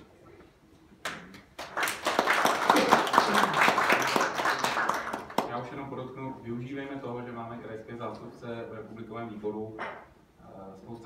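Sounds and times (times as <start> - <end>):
audience applauding: 1.6 - 5.5.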